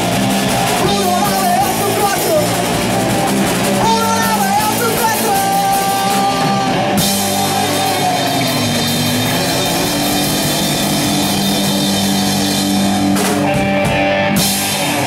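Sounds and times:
drum kit: 0:00.0 - 0:15.0
electric guitars playing chords: 0:00.0 - 0:15.0.

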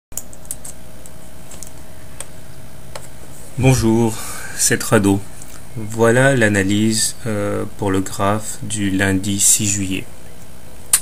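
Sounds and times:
steady low hum: 0:00.1 - 0:11.0
computer keyboard clicks: 0:00.2 - 0:00.8.

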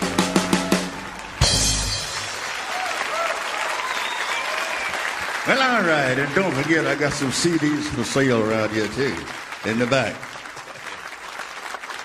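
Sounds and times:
audience applauding: 0:00.0 - 0:12.0.

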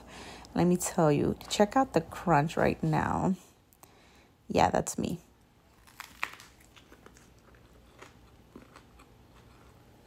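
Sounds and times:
chewing crunches: 0:05.6 - 0:10.0
crisp lettuce bite crunch: 0:05.6 - 0:10.0.

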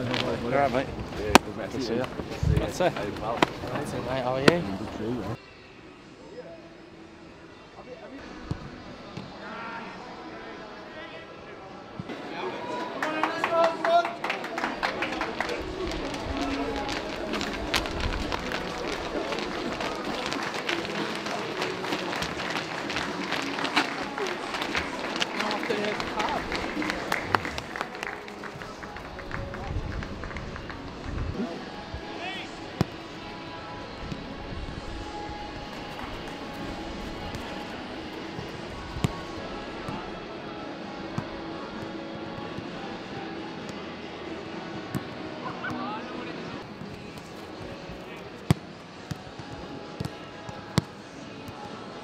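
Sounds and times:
faint music: 0:00.0 - 0:52.0
distant voices: 0:14.3 - 0:41.6.

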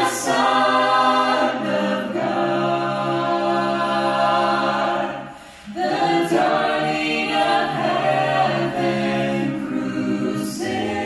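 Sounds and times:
a cappella vocal ensemble singing: 0:00.0 - 0:11.0.

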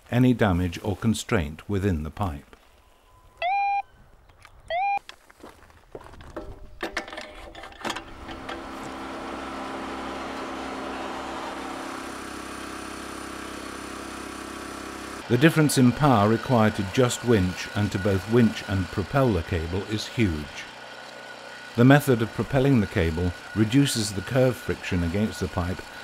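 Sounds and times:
receiver beeps sliding up: 0:03.1 - 0:03.9, 0:04.7 - 0:05.0
machine engine drone: 0:08.0 - 0:26.0.

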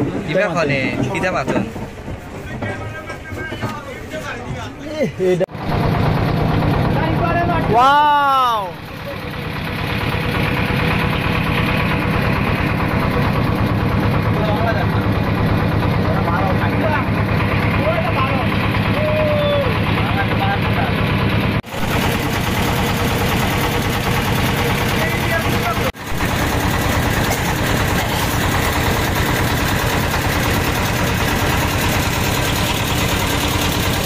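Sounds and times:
boat engine running: 0:00.0 - 0:04.8, 0:05.5 - 0:34.0.

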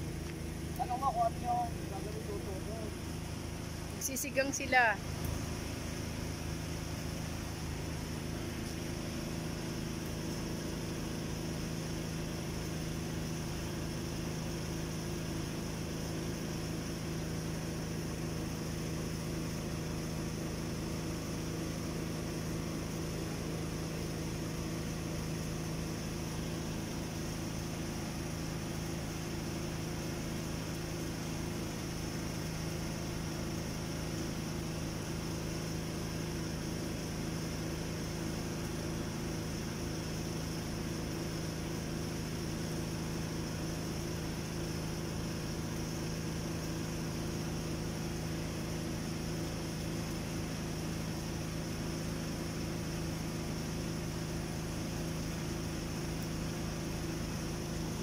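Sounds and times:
low mechanical hum: 0:00.0 - 0:58.0.

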